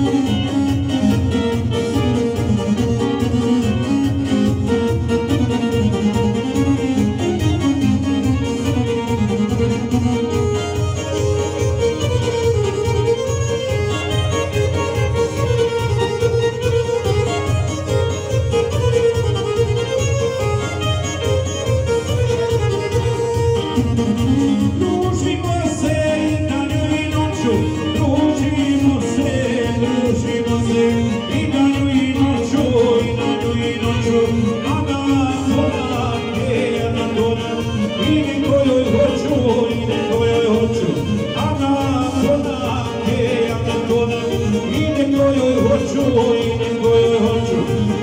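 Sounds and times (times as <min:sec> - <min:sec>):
dance music on electronic keyboards: 0:00.0 - 0:48.0.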